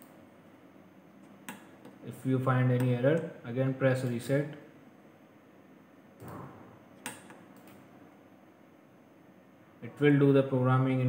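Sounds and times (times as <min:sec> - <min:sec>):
computer mouse clicks: 0:01.2 - 0:02.0, 0:07.0 - 0:07.8.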